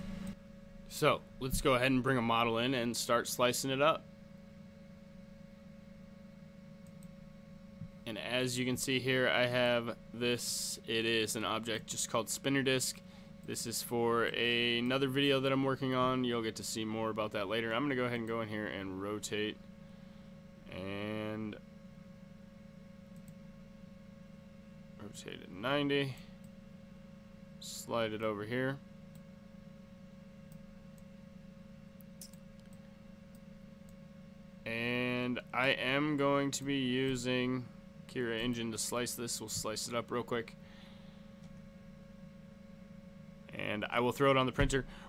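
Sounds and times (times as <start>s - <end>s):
steady hum: 0.0s - 45.0s
thin steady whine: 0.0s - 45.0s
computer mouse clicks: 32.0s - 33.4s.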